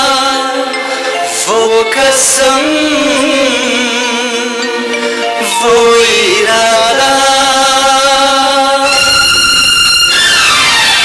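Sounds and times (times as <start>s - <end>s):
men singing a long note: 0.0s - 10.1s.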